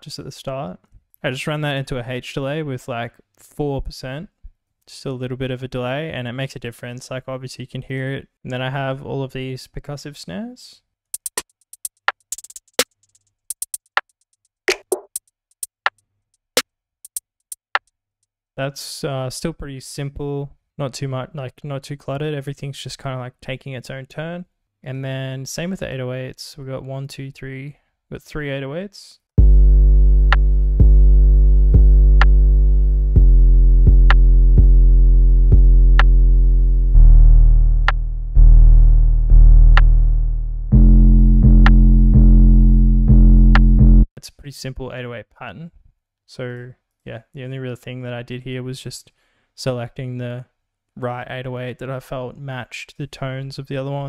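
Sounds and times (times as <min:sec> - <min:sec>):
deep sub-bass notes: 0:29.4 - 0:44.1.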